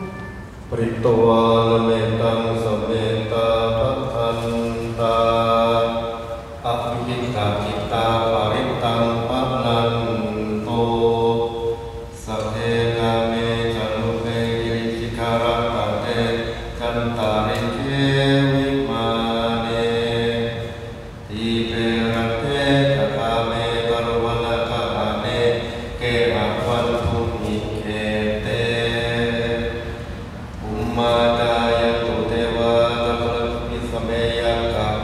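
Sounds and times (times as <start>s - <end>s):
monks chanting in monotone: 0.0s - 35.0s.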